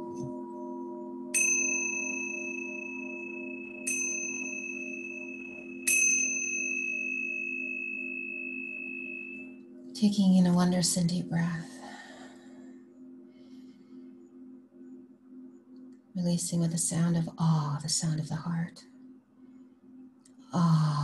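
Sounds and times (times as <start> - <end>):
singing bowl humming: 0.0 - 21.0
small high-pitched bell strikes: 1.3 - 9.6.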